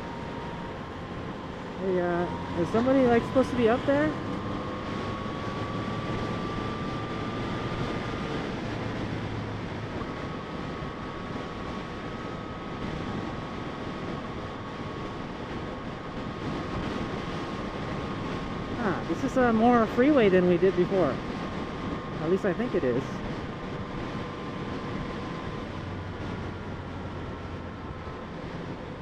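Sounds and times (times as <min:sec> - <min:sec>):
motorcycle engine cruising: 0:00.0 - 0:29.0
wind and road noise: 0:00.0 - 0:29.0.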